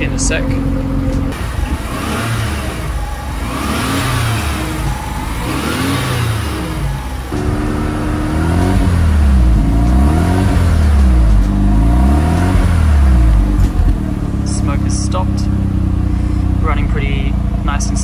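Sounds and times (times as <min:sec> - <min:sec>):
rotary engine revving in blips: 0:00.0 - 0:18.0.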